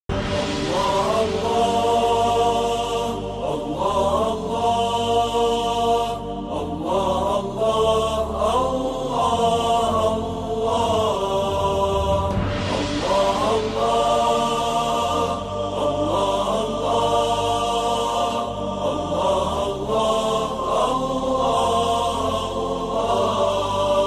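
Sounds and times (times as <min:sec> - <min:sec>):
steady low drone: 0:00.1 - 0:24.0.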